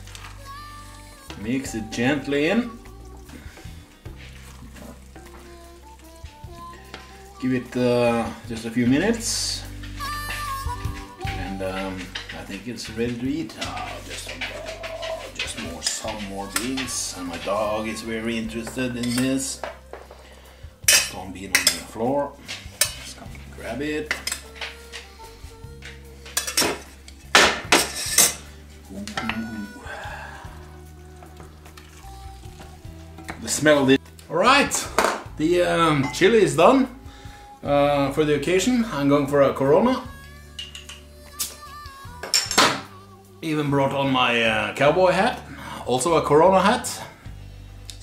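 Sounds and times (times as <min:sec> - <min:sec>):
quiet music: 0:00.0 - 0:48.0
spoon stirring thick stew: 0:01.2 - 0:07.8, 0:09.1 - 0:25.2
pots clinking and knocking: 0:11.0 - 0:25.0, 0:25.9 - 0:29.6, 0:40.6 - 0:41.1, 0:42.2 - 0:42.9.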